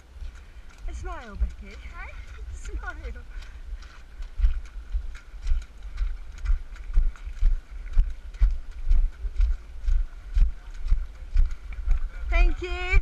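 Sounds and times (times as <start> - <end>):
running footsteps on mud: 0.0 - 13.0.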